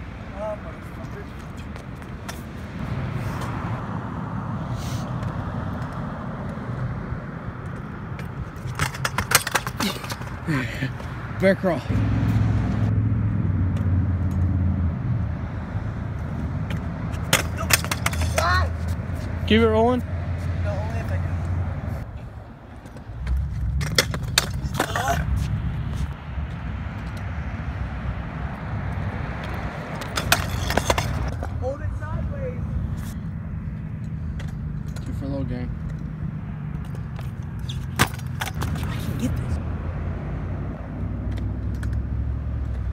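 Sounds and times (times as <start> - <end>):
scooter wheels rolling on concrete: 0.3 - 12.0, 15.7 - 39.6, 40.9 - 42.9
scooter clacking on ground: 7.6 - 10.6, 16.7 - 19.0, 22.8 - 25.4, 29.4 - 31.8, 36.8 - 39.1
steady low rumble: 20.4 - 35.0.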